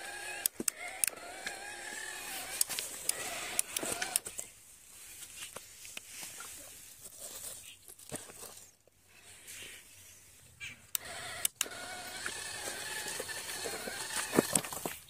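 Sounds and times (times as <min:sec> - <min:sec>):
sharp clicks: 0:00.0 - 0:04.4, 0:10.9 - 0:14.7
small electric motor whining: 0:00.0 - 0:04.4, 0:10.9 - 0:14.9.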